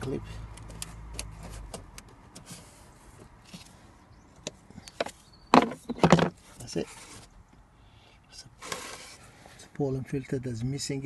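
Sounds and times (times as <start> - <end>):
plastic cover scraping: 8.6 - 9.3.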